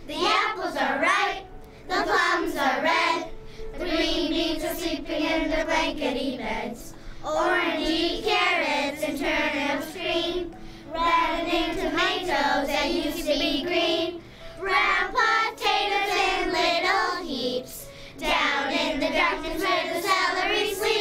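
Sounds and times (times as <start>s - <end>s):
children singing: 0.0s - 21.0s.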